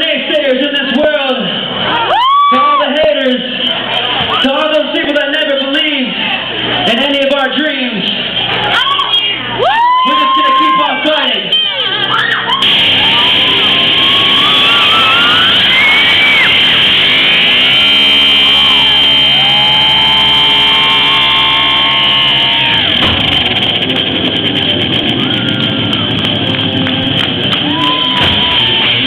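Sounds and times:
live rock band: 0:11.9 - 0:29.0
sliding guitar lines: 0:12.6 - 0:29.0.

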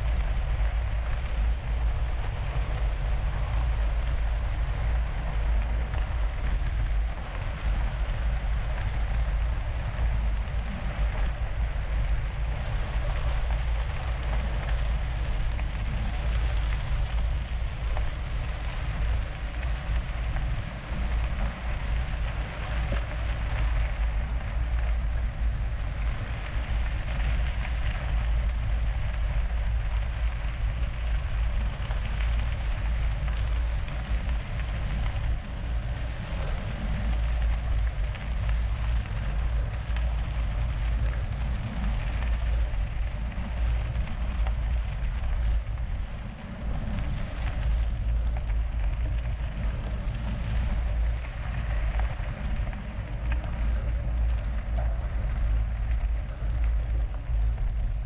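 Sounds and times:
bike tyres on gravel: 0:00.0 - 0:58.0
wind rumble on microphone: 0:00.0 - 0:58.0.

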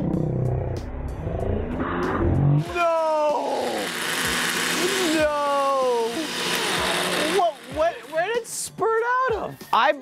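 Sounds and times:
blender whirring: 0:02.6 - 0:08.6.

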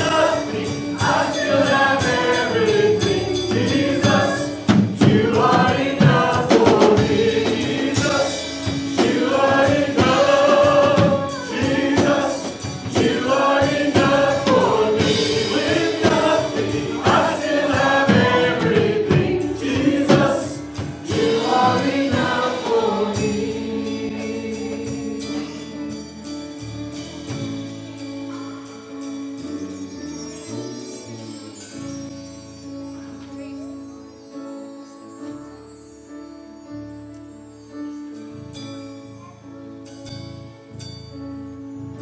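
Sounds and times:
drums: 0:00.0 - 0:35.8
keyboard: 0:00.0 - 0:42.0.

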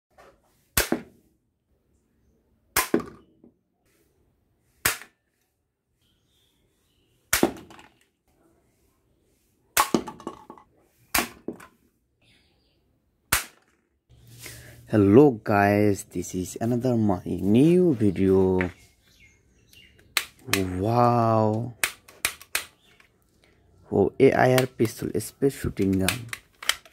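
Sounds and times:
toy gun shots: 0:02.8 - 0:03.2, 0:13.3 - 0:13.7.

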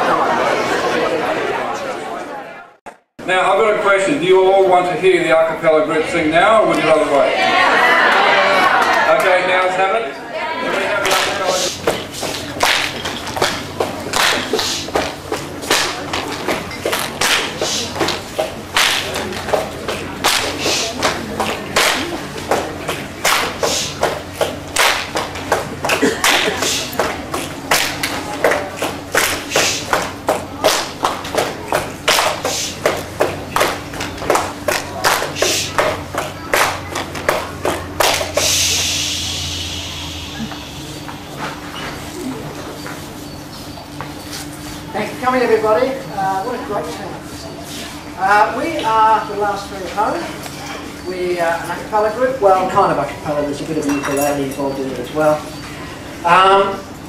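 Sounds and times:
crowd clapping in rhythm: 0:11.0 - 0:38.7.

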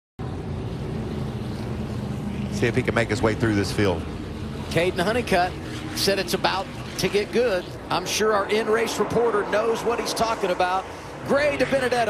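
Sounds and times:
race truck engines droning: 0:00.2 - 0:12.0.

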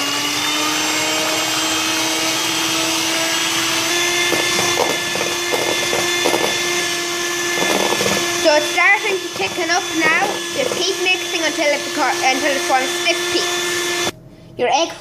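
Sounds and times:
electric hand mixer whining: 0:00.0 - 0:14.2.

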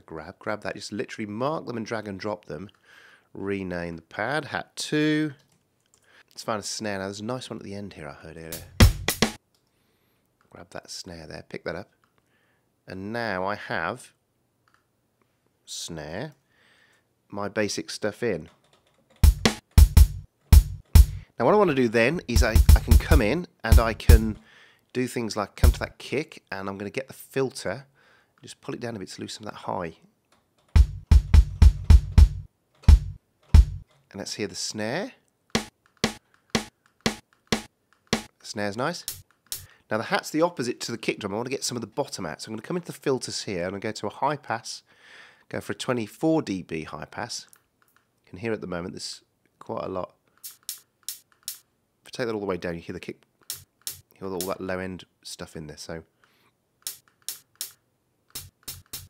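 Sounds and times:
kick drum hits: 0:08.6 - 0:09.2, 0:19.2 - 0:21.2, 0:22.4 - 0:23.2, 0:23.8 - 0:24.3, 0:30.8 - 0:33.8, 0:35.6 - 0:38.3.

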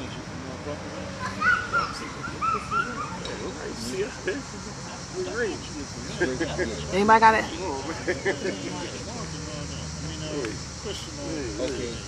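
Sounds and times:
faint voices talking: 0:00.0 - 0:12.0
insects chirring: 0:01.1 - 0:12.0.

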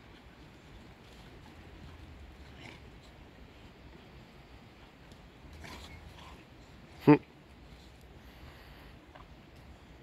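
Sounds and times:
dogs scuffling on grass: 0:00.0 - 0:04.1.

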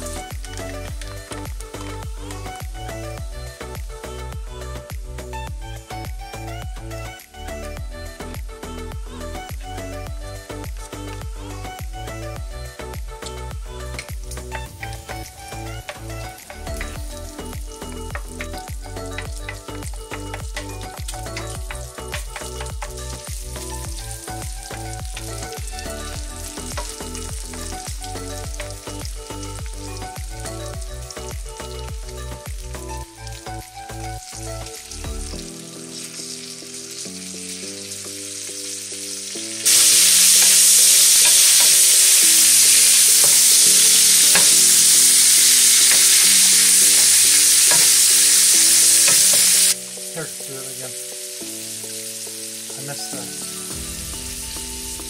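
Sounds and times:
food frying in a pan: 0:00.0 - 0:07.0, 0:07.6 - 0:55.0
background music: 0:00.0 - 0:55.0
loud steady sizzle: 0:00.0 - 0:55.0.

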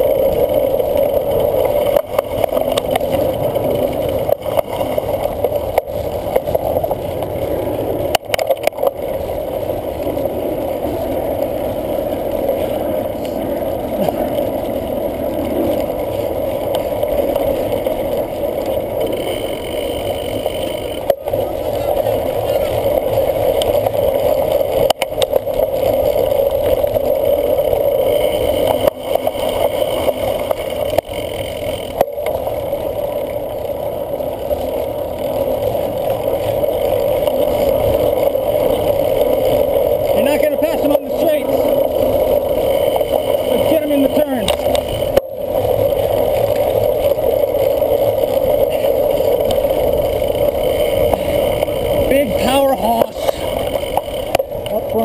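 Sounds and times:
bike rumbling over bumpy grass: 0:00.0 - 0:55.0.

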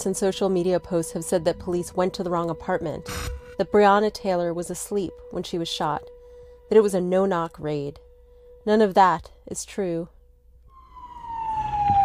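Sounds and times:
police siren wailing: 0:10.7 - 0:12.0.

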